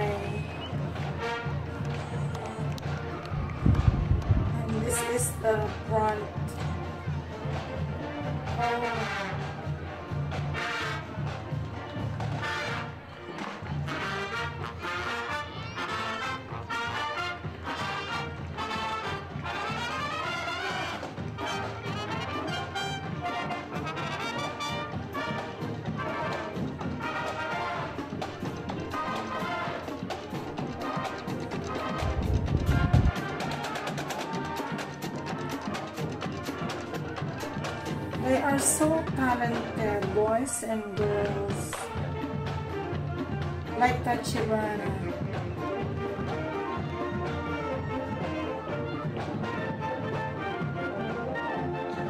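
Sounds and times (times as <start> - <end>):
brass marching band playing: 0.0 - 52.0.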